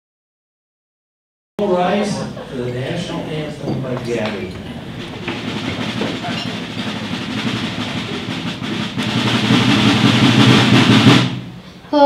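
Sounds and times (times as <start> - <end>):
people shuffling: 1.6 - 8.8
chairs scraping and rattling: 2.0 - 9.4.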